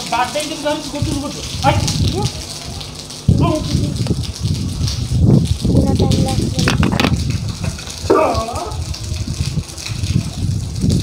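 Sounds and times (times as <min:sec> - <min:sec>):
rain on rooftops: 0:00.0 - 0:11.0
wind buffeting microphone: 0:00.8 - 0:11.0.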